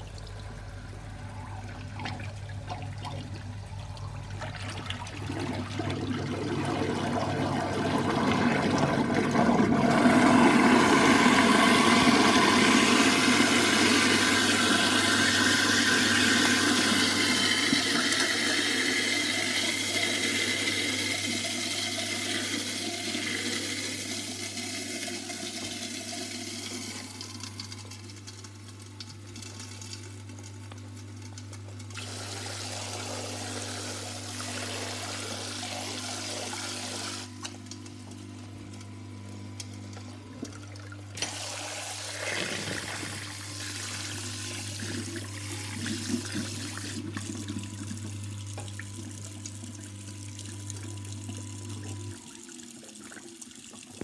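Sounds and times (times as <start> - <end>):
water rushing down a drain: 0.0 - 27.6, 40.4 - 54.0
garbage disposal motor hum: 0.0 - 54.0.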